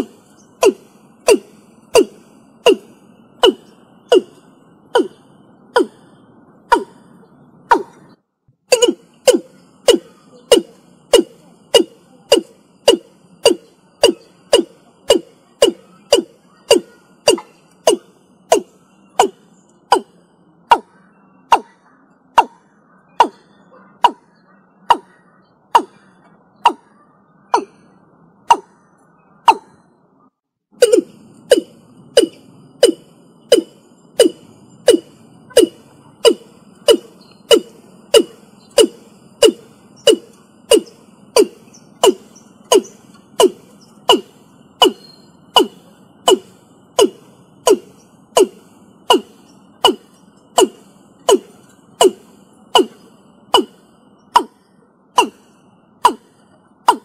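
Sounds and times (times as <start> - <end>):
bird calling deep notes: 0.0 - 57.0
faint steady high tone: 8.7 - 56.7.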